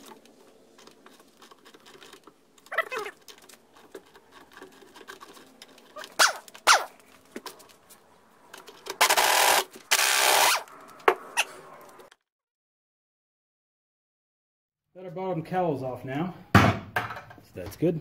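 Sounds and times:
impact wrench spinning: 9.0s - 10.7s.

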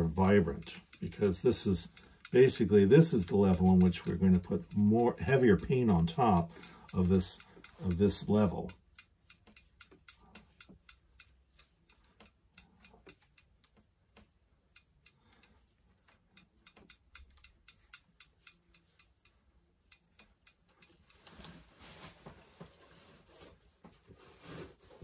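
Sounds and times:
faint light ticks and clicks: 0.0s - 24.1s.

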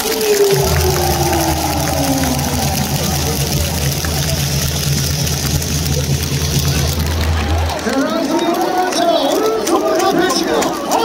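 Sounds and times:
crowd noise: 0.0s - 11.0s
stadium loudspeaker: 0.0s - 11.0s.

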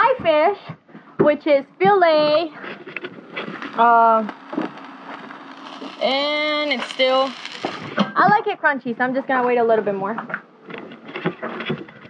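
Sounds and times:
fish sizzling on a griddle: 3.3s - 8.0s.

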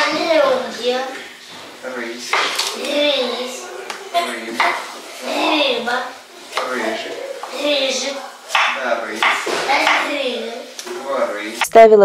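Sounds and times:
child speaking: 0.0s - 1.3s, 2.7s - 6.2s, 6.8s - 8.4s, 9.6s - 10.8s
knife knocking on cutting board: 8.5s - 10.1s.

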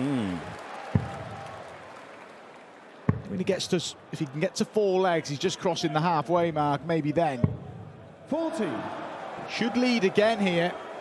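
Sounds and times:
crowd noise and applause: 0.0s - 5.7s, 7.8s - 11.0s.

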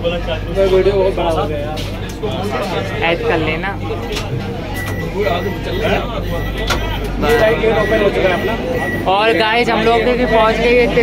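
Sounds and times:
people talking indistinctly: 0.0s - 11.0s
steady low hum: 0.0s - 11.0s.

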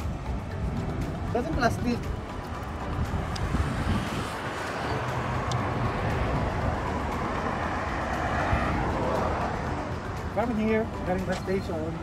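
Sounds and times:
road traffic rushing: 0.0s - 12.0s.

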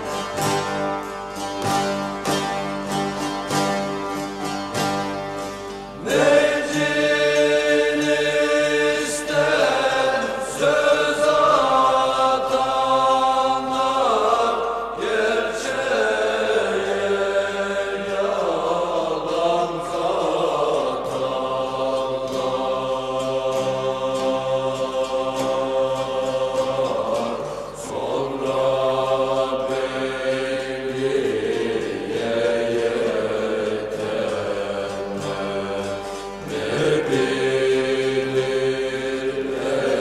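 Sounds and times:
person singing long held notes: 6.0s - 40.0s.

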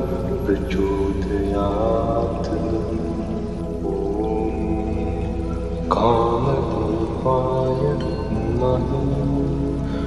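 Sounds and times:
mantra chanting: 0.0s - 10.0s
steady low drone: 0.0s - 10.0s.

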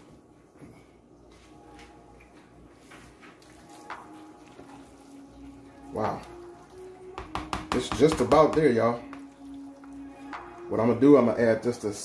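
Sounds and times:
spoon stirring wet mixture: 1.1s - 11.6s.

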